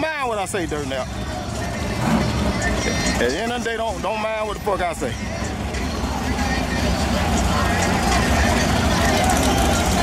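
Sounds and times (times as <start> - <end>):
crowd chatter: 0.0 - 10.0
drag car engines rumbling: 0.0 - 10.0.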